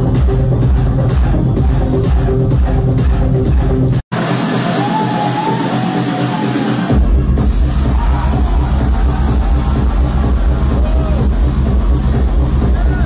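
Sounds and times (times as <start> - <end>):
trance dance music: 0.0 - 13.0.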